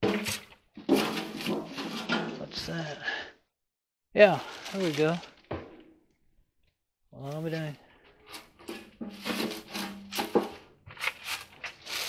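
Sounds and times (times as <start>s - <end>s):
man speaking: 2.3s - 3.2s, 4.2s - 5.3s, 7.2s - 7.8s.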